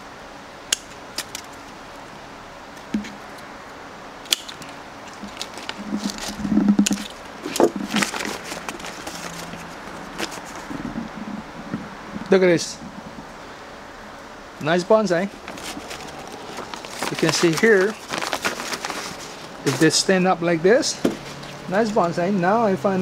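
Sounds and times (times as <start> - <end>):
scissors snipping twigs: 0.7 - 1.6, 4.2 - 9.2.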